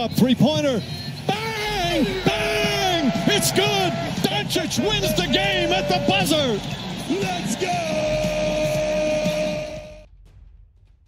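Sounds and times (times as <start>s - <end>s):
people shouting: 1.3s - 10.0s
steady high tone: 7.9s - 10.1s.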